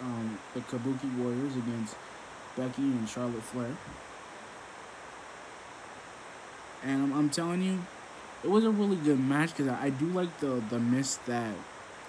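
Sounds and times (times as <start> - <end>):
man's voice: 0.0 - 2.0, 2.6 - 3.9, 6.8 - 11.6
room tone hiss: 0.0 - 12.0.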